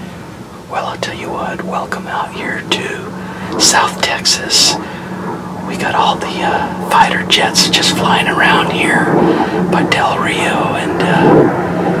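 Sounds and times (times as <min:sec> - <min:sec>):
faint steady hum: 0:00.0 - 0:12.0
man speaking in hushed voice: 0:00.7 - 0:05.0, 0:05.7 - 0:11.5.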